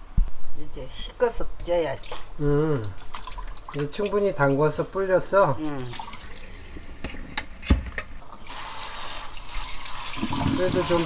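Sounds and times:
water splashing into sink: 0:02.9 - 0:04.6, 0:05.8 - 0:07.2, 0:08.4 - 0:11.0.

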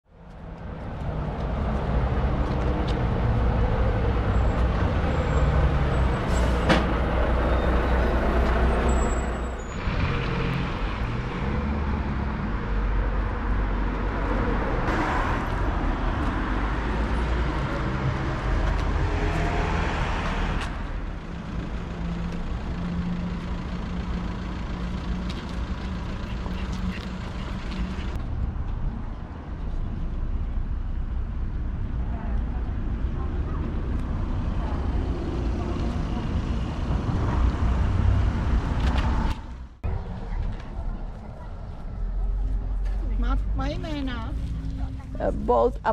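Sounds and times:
road noise: 0:00.0 - 0:45.9
motor vehicles passing: 0:00.1 - 0:45.9.

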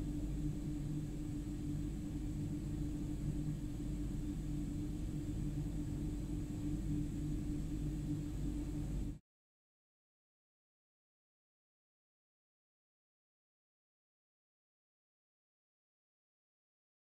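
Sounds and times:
low droning hum: 0:00.0 - 0:09.2.

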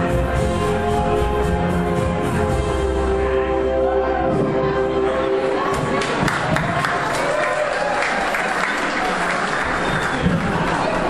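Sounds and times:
people talking: 0:03.1 - 0:07.1
audience applauding: 0:05.7 - 0:11.0.

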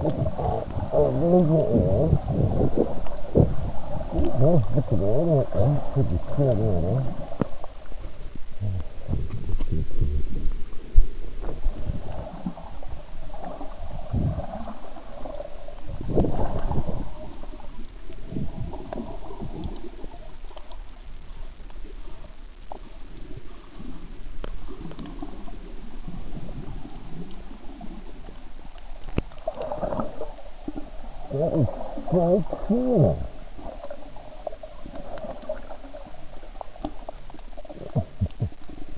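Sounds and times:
underwater gurgling and sloshing: 0:00.0 - 0:38.9
low underwater thumps: 0:08.6 - 0:12.1, 0:37.8 - 0:38.7.

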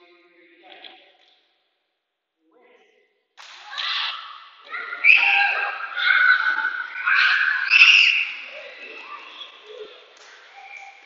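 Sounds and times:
children shouting excitedly: 0:03.6 - 0:11.0
children chattering: 0:03.7 - 0:11.0.

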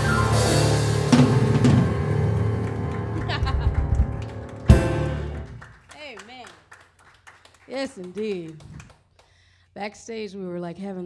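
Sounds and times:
woman talking: 0:05.9 - 0:06.6, 0:07.7 - 0:08.7, 0:09.8 - 0:11.0.

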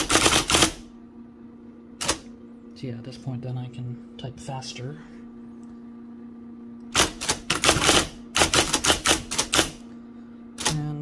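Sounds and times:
electric typewriter typing quickly: 0:00.0 - 0:00.8, 0:02.0 - 0:02.2, 0:06.9 - 0:09.8, 0:10.6 - 0:11.0
steady hum: 0:00.0 - 0:11.0.

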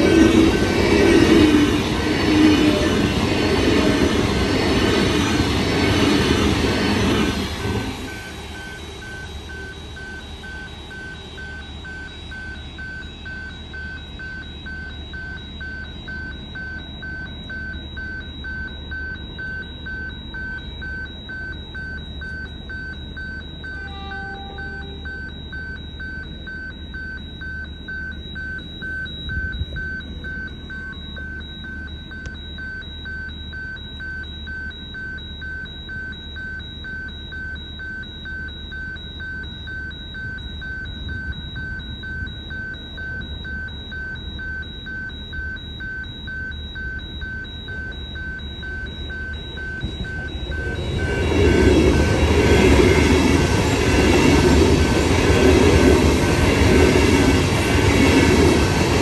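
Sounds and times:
electric train passing: 0:00.0 - 0:13.7, 0:23.6 - 0:25.7, 0:49.6 - 0:59.0
rapid two-tone electronic beeping: 0:00.0 - 0:59.0.

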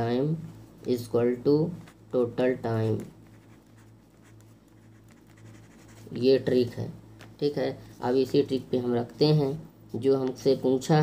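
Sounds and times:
pen scratching on paper: 0:03.2 - 0:06.2.

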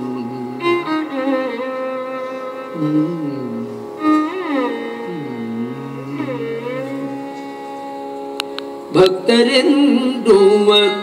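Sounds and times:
violin holding a note: 0:00.0 - 0:09.4
steady drone: 0:00.0 - 0:09.8.

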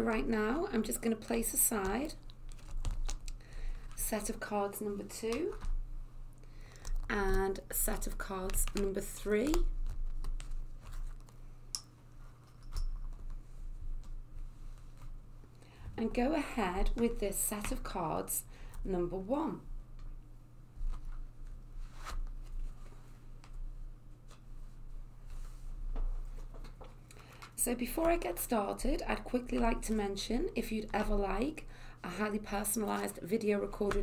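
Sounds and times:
cards tapping and clicking: 0:06.7 - 0:11.9.

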